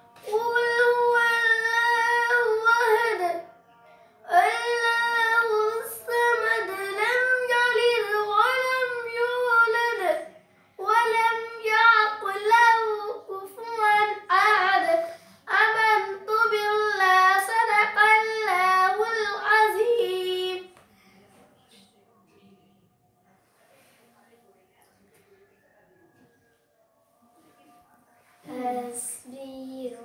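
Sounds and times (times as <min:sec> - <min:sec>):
girl singing unaccompanied: 0:00.0 - 0:03.6, 0:04.2 - 0:20.7, 0:28.2 - 0:30.0.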